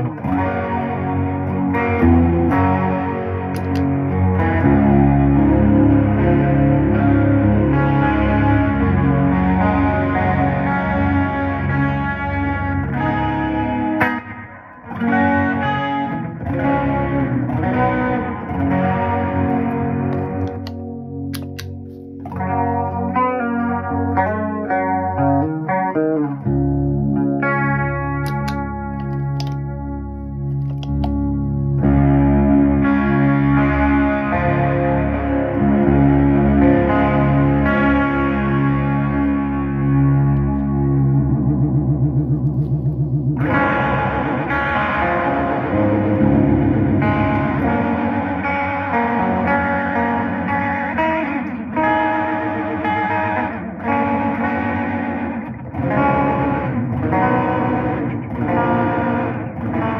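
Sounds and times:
electric guitar with chorus effect: 0.0s - 59.9s.

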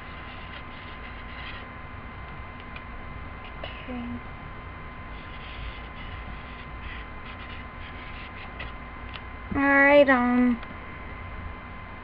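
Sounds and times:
marker scratching on paper plate: 0.0s - 1.7s, 5.1s - 8.8s
thin high whine: 0.0s - 2.2s, 3.0s - 12.0s
electrical hum and hiss: 0.0s - 12.0s.

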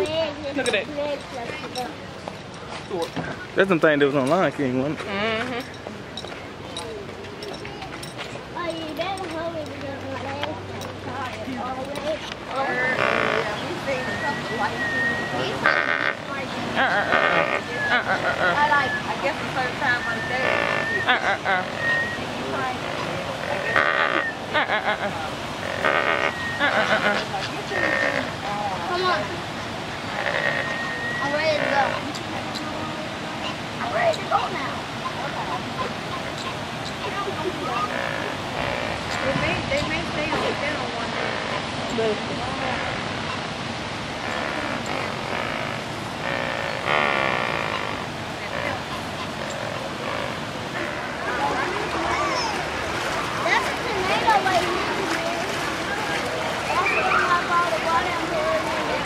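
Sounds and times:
flamingos honking: 5.0s - 6.2s, 12.1s - 59.0s.

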